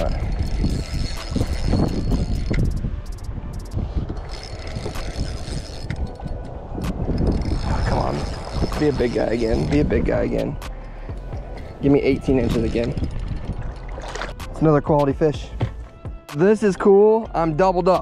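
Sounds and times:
fishing reel ticking: 0:00.0 - 0:14.8
steady low rumble: 0:00.0 - 0:15.0.

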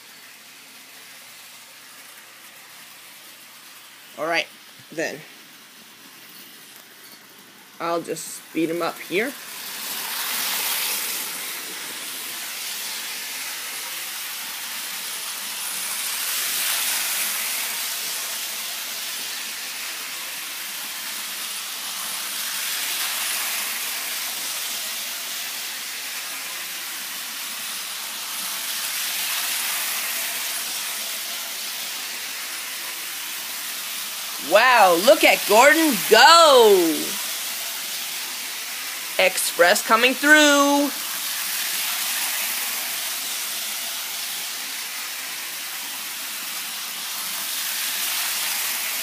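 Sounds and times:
model train motor whirring on rails: 0:00.0 - 0:34.4, 0:37.2 - 0:40.3, 0:40.9 - 0:49.0.

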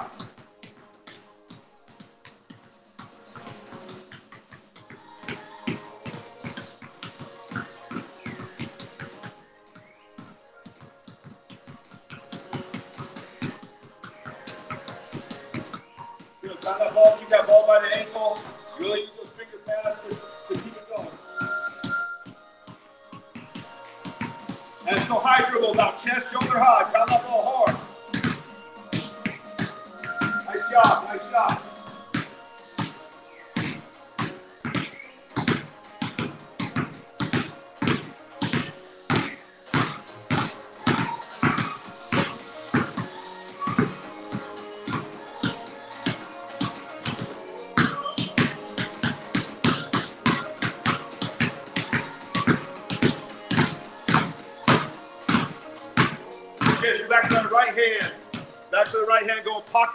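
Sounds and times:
basketballs bouncing on concrete: 0:00.0 - 0:59.9.

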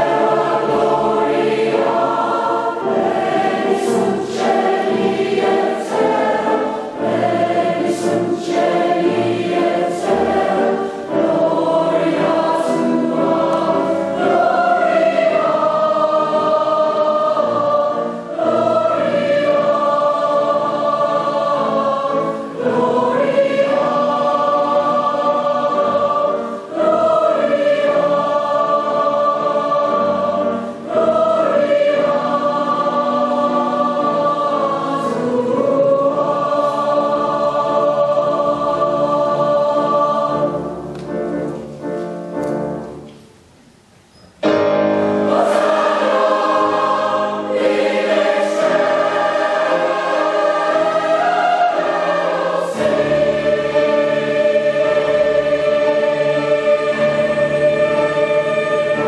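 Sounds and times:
mixed choir singing: 0:00.0 - 0:43.1, 0:44.6 - 0:59.0
piano accompaniment: 0:00.0 - 0:59.0.

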